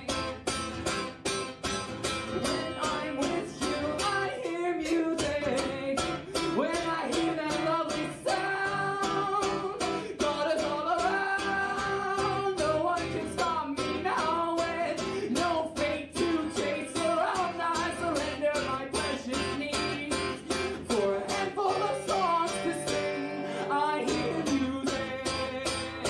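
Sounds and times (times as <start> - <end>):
guitar strumming: 0.0 - 26.0
man singing into a microphone: 2.3 - 26.0.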